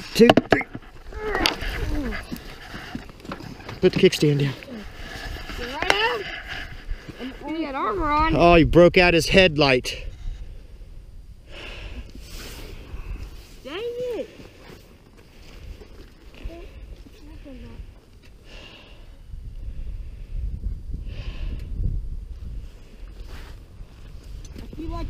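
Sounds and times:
faint murmurs: 0.6 - 7.8
wind rumble on microphone: 4.8 - 13.6, 19.0 - 25.0.

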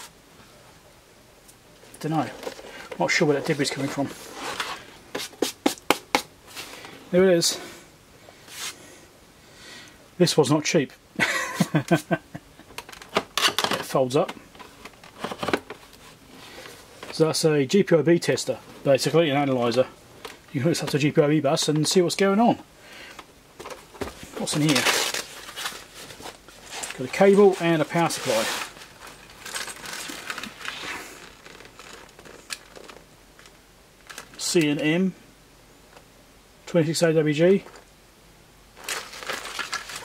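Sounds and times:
cloth rustling: 23.6 - 33.0.

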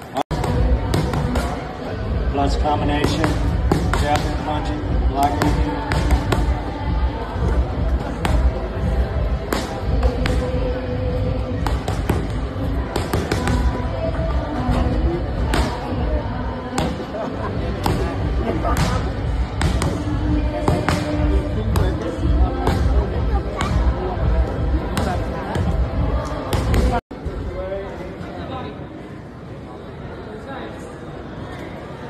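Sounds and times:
boxing gloves hitting pads: 0.3 - 1.6, 3.0 - 4.5, 5.2 - 6.5, 11.6 - 13.8, 17.8 - 22.0.

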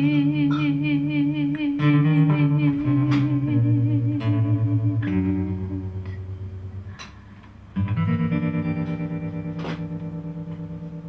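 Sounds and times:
guitar chord ringing: 0.0 - 11.0.

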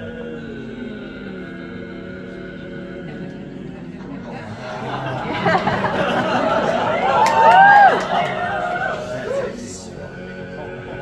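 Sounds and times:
male quartet singing a cappella: 0.0 - 7.1, 8.4 - 11.0.

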